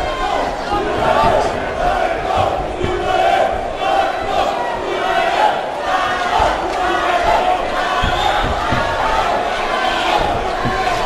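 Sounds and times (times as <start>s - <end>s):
crowd shouting and cheering: 0.0s - 11.0s
dull low thuds: 0.7s - 3.8s, 7.3s - 11.0s.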